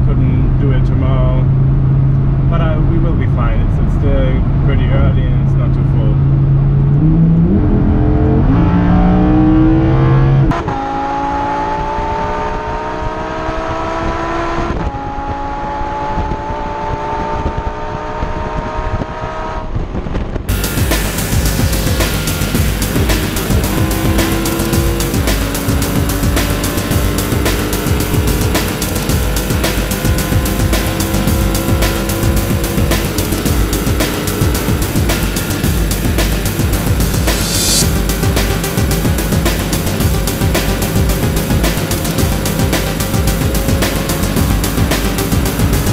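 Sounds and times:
sports car engine at full throttle: 0:00.0 - 0:45.9
gear upshifts: 0:20.5 - 0:45.9
music with a steady beat: 0:20.5 - 0:45.9.

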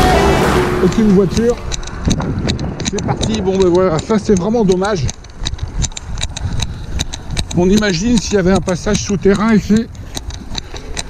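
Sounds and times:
wind rumble on microphone: 0:00.0 - 0:11.0
bike clicks and rattles: 0:00.8 - 0:11.0.

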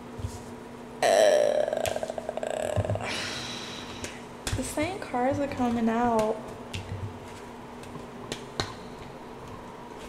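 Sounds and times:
rattling throat sound: 0:01.0 - 0:03.2.

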